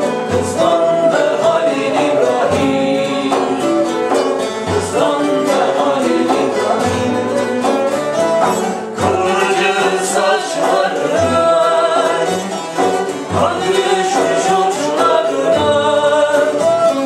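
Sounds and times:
flute: 0.0 - 17.0
lutes strummed and plucked: 0.0 - 17.0.

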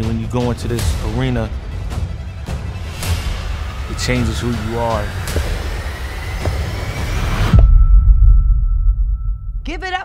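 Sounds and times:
rising tone: 3.5 - 9.5.

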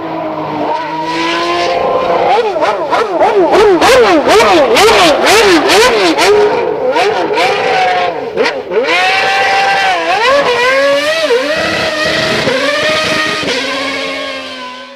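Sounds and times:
racing engine revving: 0.0 - 14.9.

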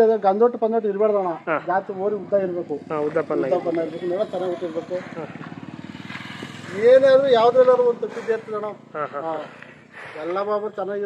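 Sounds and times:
man's voice: 0.0 - 5.4, 6.6 - 11.0
motorcycle passing: 0.0 - 11.0.

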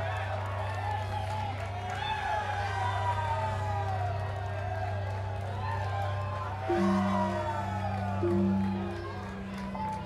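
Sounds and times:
low synth drone: 6.7 - 10.0
tone gliding downward: 6.7 - 10.0.

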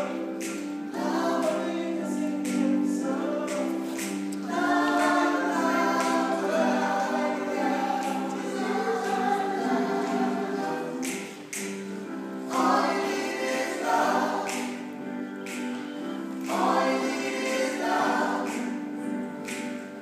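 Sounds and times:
choir singing sustained chords: 0.0 - 15.2, 16.1 - 19.3.

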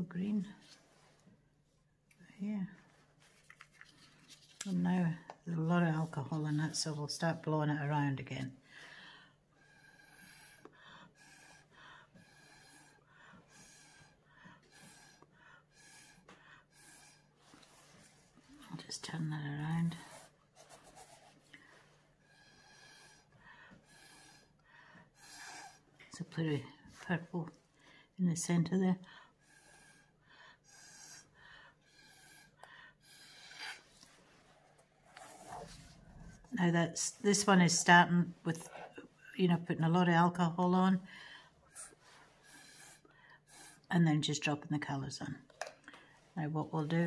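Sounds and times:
breath blown through a straw: 9.6 - 18.2, 22.2 - 25.9, 29.4 - 34.0, 41.7 - 43.9.

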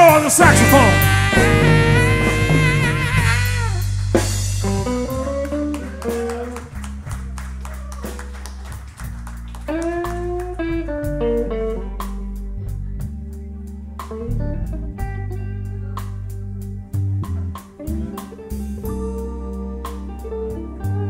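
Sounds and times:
electric guitar lead lines: 0.0 - 7.0, 9.6 - 21.0
bass guitar: 0.0 - 21.0
drums: 0.0 - 21.0.

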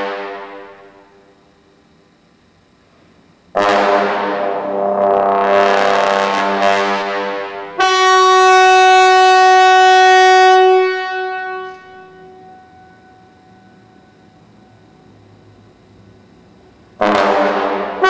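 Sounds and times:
trombone playing sustained note: 0.0 - 1.1, 3.5 - 14.2, 17.0 - 18.0.

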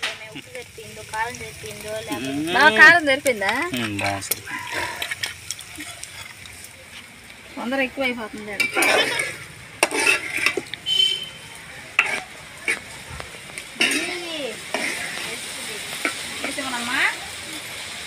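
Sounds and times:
food sizzling in a pan: 0.0 - 18.0
metal spatula scraping pan: 8.5 - 11.2, 12.0 - 12.9, 13.8 - 16.8.

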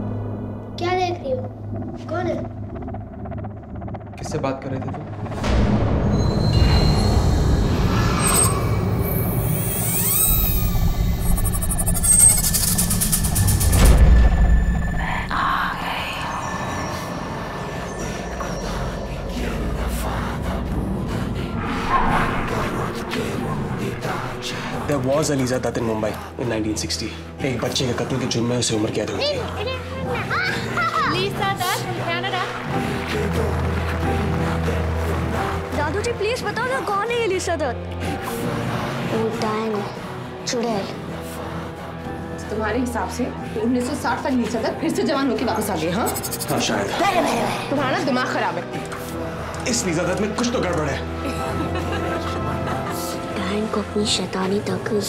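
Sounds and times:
loud low rumble: 0.0 - 9.9, 10.6 - 25.0
low music drone: 0.0 - 55.0
high whining tones: 1.2 - 24.4
girl speaking high-pitched: 29.6 - 31.7.

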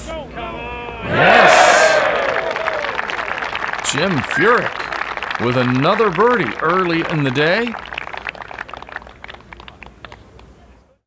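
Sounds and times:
spectators clapping: 1.1 - 10.5.

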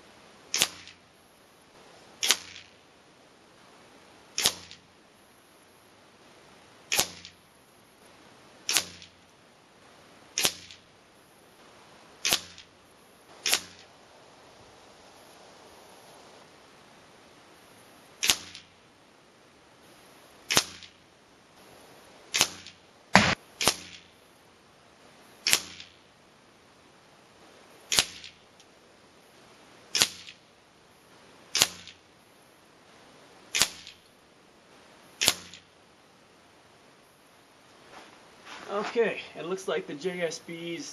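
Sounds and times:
air rifle shot cracks: 0.5 - 1.0, 2.2 - 2.7, 4.4 - 4.8, 6.9 - 7.4, 8.7 - 9.2, 10.4 - 10.8, 12.2 - 12.7, 13.4 - 13.9, 18.2 - 18.7, 20.5 - 21.0, 22.3 - 24.1, 25.4 - 26.0, 27.9 - 28.4, 29.9 - 30.4, 31.5 - 32.0, 33.5 - 34.0, 35.2 - 35.6
pellets striking target: 8.7 - 9.2, 22.4 - 24.1.

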